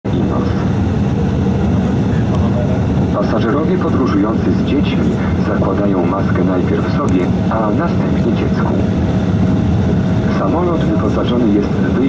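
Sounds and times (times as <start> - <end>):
jet engine cabin rumble: 0.0 - 12.0.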